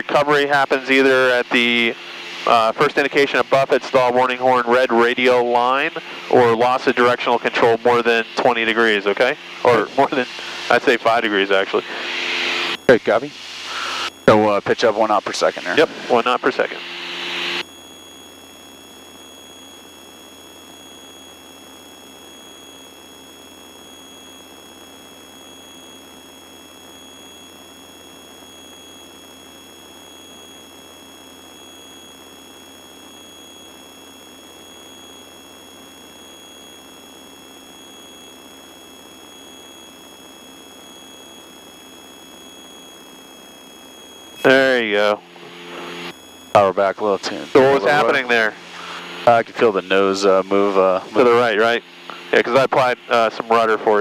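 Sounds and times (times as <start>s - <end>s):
faint high-pitched whines: 0.0s - 54.0s.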